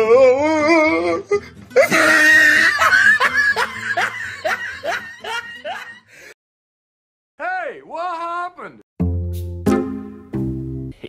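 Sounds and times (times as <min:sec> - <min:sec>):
laughter sound effect: 0:01.8 - 0:06.0.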